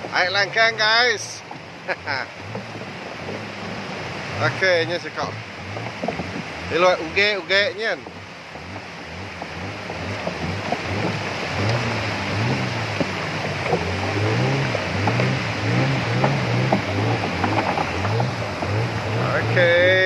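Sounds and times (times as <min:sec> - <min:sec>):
river rapids rushing: 0:00.0 - 0:20.0.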